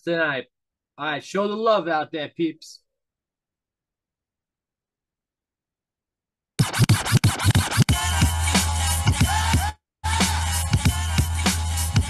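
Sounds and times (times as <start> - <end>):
vinyl scratching on turntable: 6.6 - 9.6.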